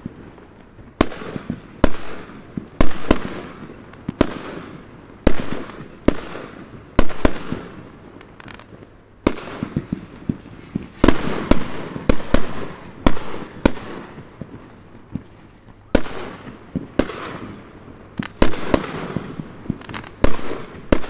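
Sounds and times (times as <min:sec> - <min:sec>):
fireworks bangs: 0:00.0 - 0:21.0.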